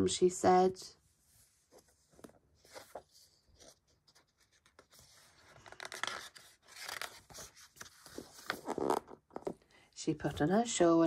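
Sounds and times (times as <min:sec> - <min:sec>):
book page turning: 0:01.6 - 0:09.6.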